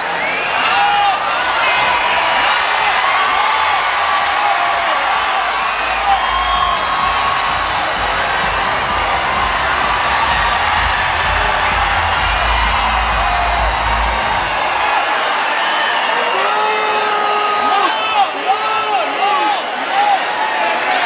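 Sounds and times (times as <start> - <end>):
audience cheering and screaming: 0.0 - 21.0
loud music over sound system: 5.8 - 14.8.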